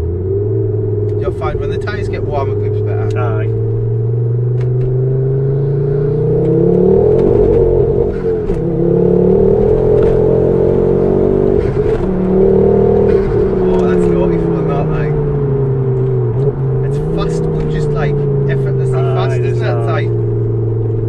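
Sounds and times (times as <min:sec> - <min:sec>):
car engine accelerating hard: 0:00.0 - 0:21.0.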